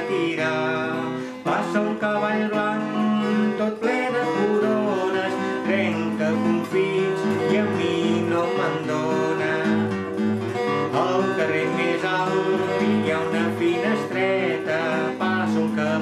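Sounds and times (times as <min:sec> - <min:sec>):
acoustic guitar: 0:00.0 - 0:16.0
man singing: 0:00.0 - 0:16.0.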